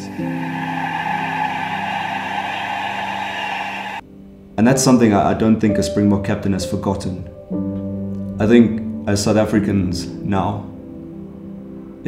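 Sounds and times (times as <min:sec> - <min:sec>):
stadium crowd noise: 0:00.0 - 0:04.0.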